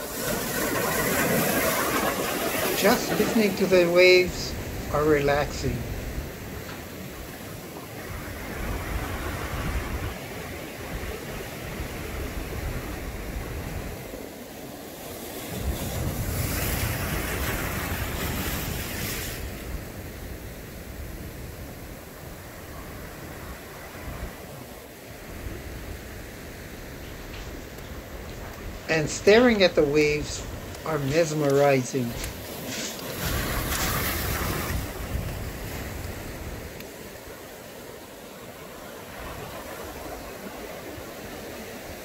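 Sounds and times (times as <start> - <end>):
ocean waves breaking: 0.0 - 42.0.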